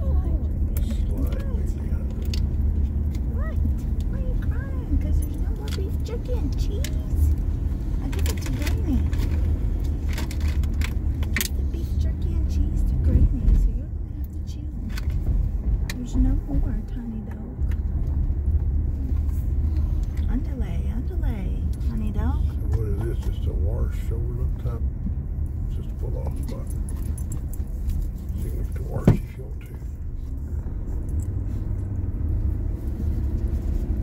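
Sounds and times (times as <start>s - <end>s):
road and engine rumble in car: 0.0s - 34.0s.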